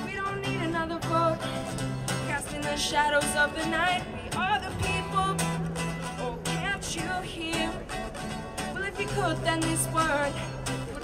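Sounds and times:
strummed acoustic guitar: 0.0 - 11.0.

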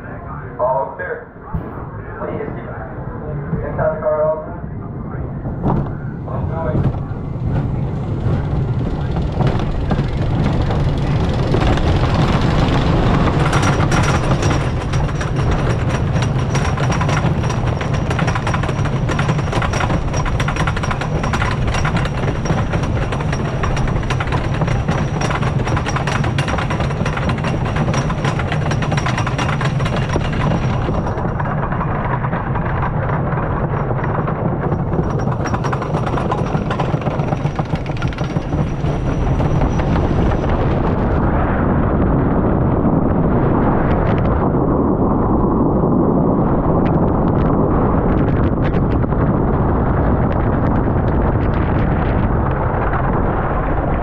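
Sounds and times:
roller coaster clacking: 0.0 - 54.0
lift chain rumble: 5.1 - 54.0.

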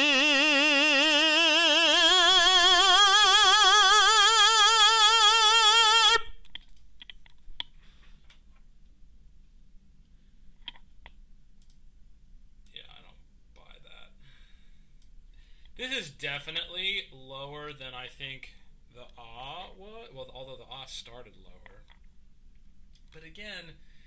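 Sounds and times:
man singing sustained vowel: 0.0 - 6.2
faint clicks: 10.6 - 11.8.

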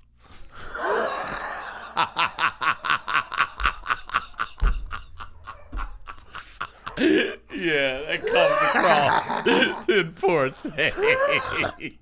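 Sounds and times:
man laughing hard: 0.8 - 12.0.

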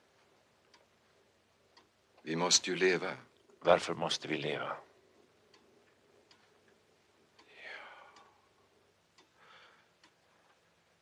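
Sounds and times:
clock ticking faintly: 0.0 - 3.6, 4.8 - 11.0
soft breaths: 5.0 - 11.0.

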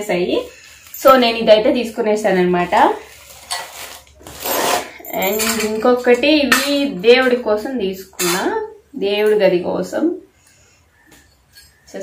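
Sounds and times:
woman's voice: 0.0 - 3.1, 5.0 - 10.3
plastic packaging crinkling: 3.0 - 5.4.

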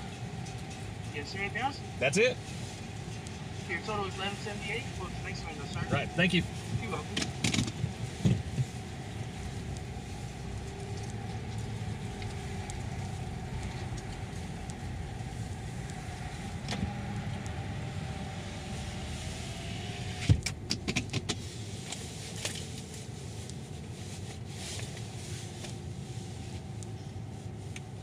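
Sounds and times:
car engine and road hum: 0.0 - 28.0
sharp clicks and knocks: 7.1 - 8.4, 20.2 - 21.4.

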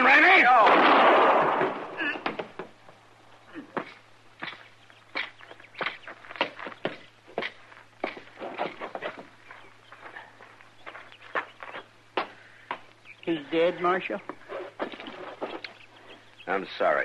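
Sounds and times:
low recording hum: 0.0 - 17.0
footsteps walking: 3.7 - 13.0, 14.2 - 15.8.

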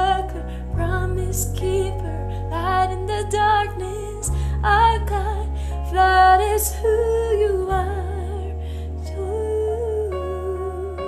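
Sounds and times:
bass: 0.0 - 11.0
woman singing: 0.0 - 11.0.

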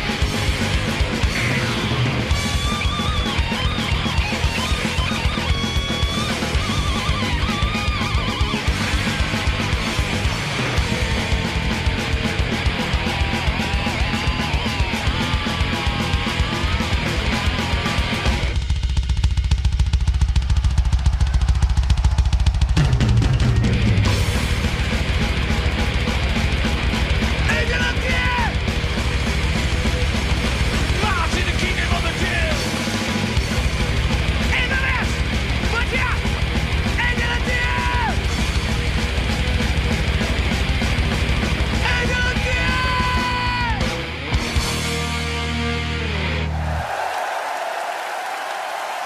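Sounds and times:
double bass drum roll: 0.0 - 44.9
distorted guitars: 0.0 - 46.7
man screaming: 27.5 - 28.5, 42.0 - 43.8.

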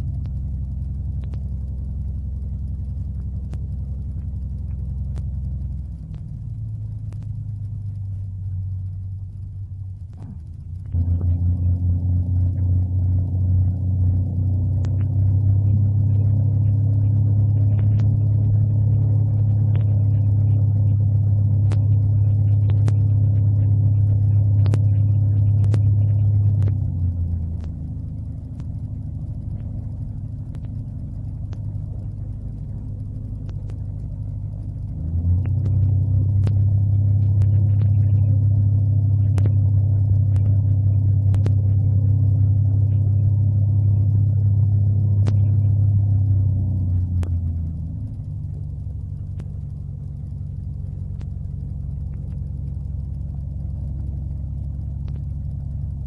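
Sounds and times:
aircraft engine and propeller throbbing: 0.0 - 56.0.

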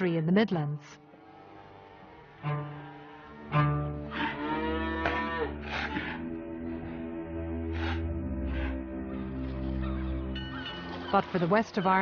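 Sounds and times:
background music with low notes: 0.0 - 12.0
cattle mooing: 1.1 - 6.9.

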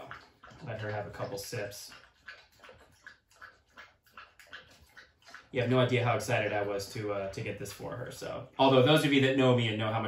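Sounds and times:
dog lapping liquid: 0.0 - 10.0.

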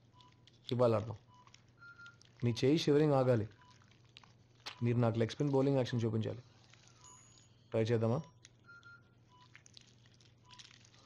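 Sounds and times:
patient monitor beeping: 0.0 - 3.9, 4.7 - 9.8.

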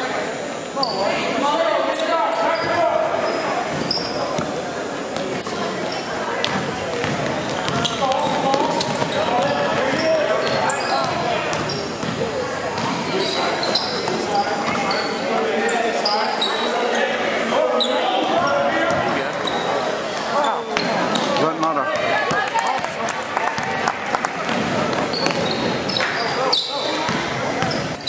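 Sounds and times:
voices of spectators and players: 0.0 - 28.0
sneakers squeaking on court: 0.8 - 1.3, 2.0 - 17.0, 17.8 - 22.5, 24.4 - 28.0
basketball bouncing on hardwood: 6.4 - 12.2.

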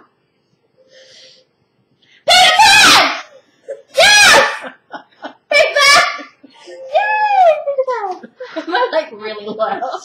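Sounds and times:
high-pitched shrieks of laughter: 2.3 - 4.8.

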